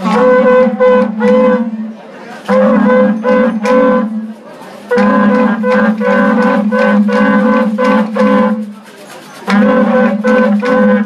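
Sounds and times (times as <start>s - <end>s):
animal horns blowing short notes: 0.0s - 11.0s.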